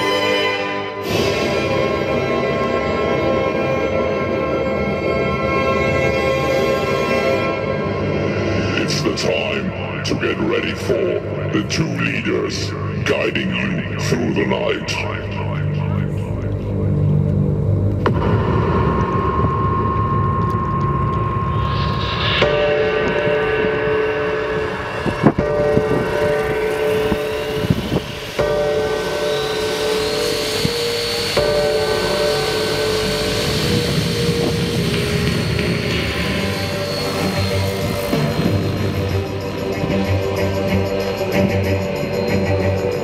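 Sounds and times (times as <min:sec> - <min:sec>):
music: 0:00.0 - 0:43.0
model helicopter whine: 0:26.1 - 0:43.0.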